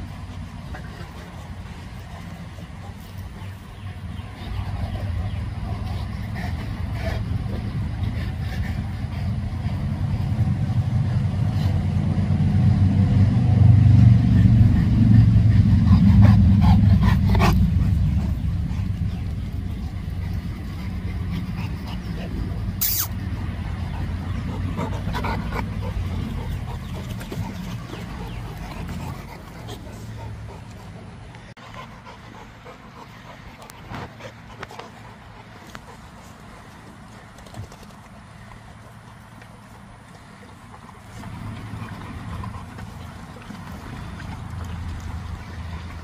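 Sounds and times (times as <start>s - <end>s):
low rumble: 0.0s - 31.5s.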